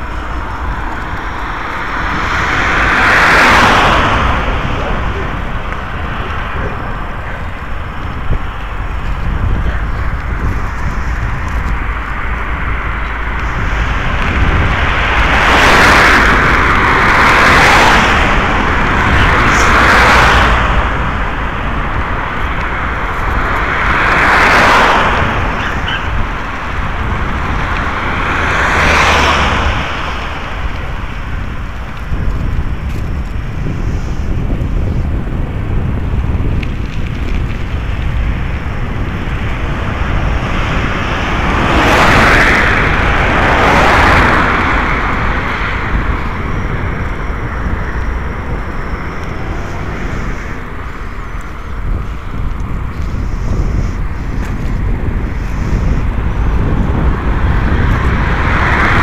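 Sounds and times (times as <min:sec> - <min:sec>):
cars passing with whoosh: 0:00.0 - 0:59.0
road noise: 0:00.0 - 0:59.0
wind rumble on microphone: 0:00.0 - 0:59.0.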